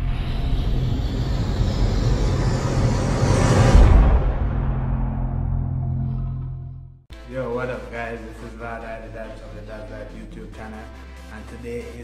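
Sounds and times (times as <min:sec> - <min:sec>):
rushing whoosh: 0:00.0 - 0:06.0
low rumbling cinematic music: 0:00.0 - 0:11.4.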